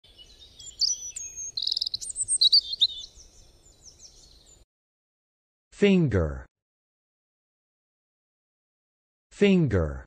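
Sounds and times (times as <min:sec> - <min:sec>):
songbirds chirping and trilling: 0:00.0 - 0:04.7.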